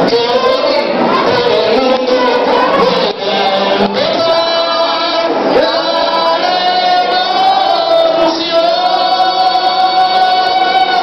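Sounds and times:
group of voices singing: 0:00.0 - 0:11.0
lead singer on microphone: 0:00.0 - 0:11.0.

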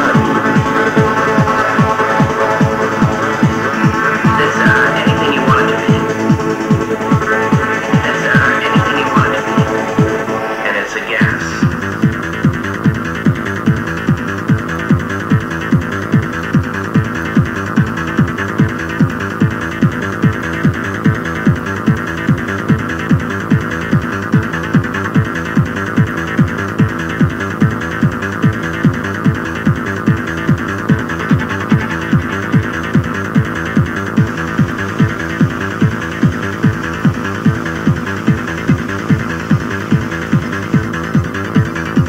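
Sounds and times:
falling synth sweep: 0:00.0 - 0:10.7
trance dance music: 0:00.0 - 0:42.0.

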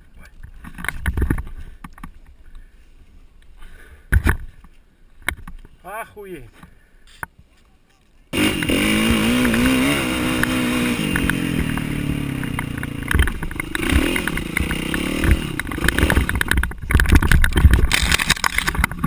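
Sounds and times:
dirt bike engine revving: 0:08.3 - 0:16.7.

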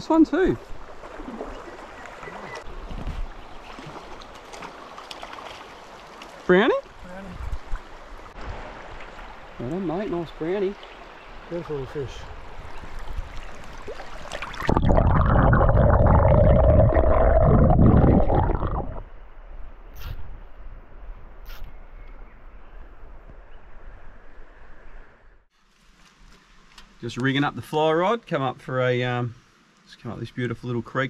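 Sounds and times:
creek water running: 0:00.0 - 0:19.0.

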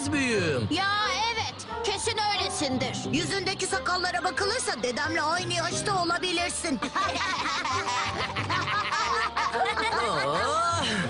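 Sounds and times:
light background music: 0:00.0 - 0:11.0
cartoon children laughing: 0:06.8 - 0:11.0.

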